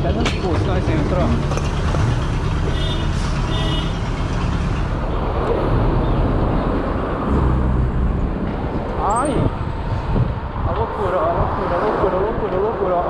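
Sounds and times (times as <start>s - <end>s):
motor vehicles passing close: 0.0s - 13.0s
wind rumble on microphone: 5.2s - 13.0s.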